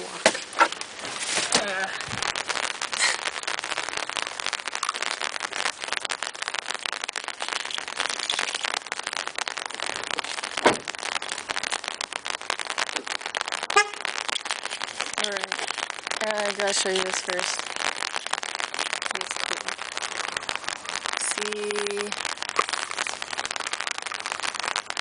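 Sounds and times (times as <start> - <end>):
rain on umbrella: 0.0 - 25.0
knocks on umbrella: 10.6 - 10.9.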